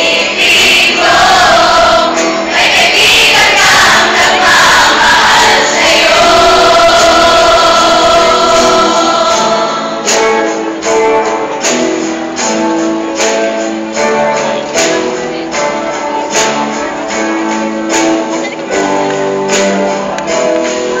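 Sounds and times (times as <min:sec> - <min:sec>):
choir singing: 0:00.0 - 0:10.5.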